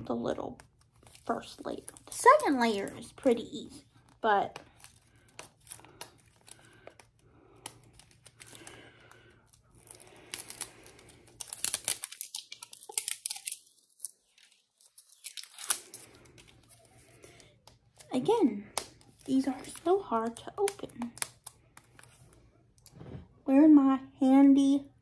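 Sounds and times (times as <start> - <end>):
wrapping being torn and crinkled: 0.1 - 22.6.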